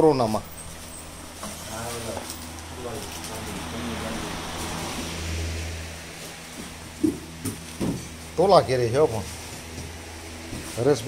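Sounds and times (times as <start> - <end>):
electric fan running: 0.0 - 11.0.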